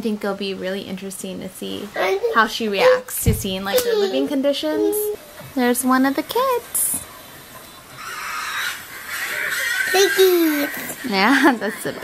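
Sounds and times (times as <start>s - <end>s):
pig squealing: 7.9s - 12.0s.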